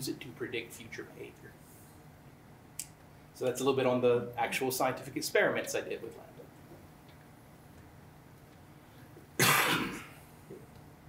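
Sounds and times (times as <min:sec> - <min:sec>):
man coughing: 0:09.4 - 0:10.2.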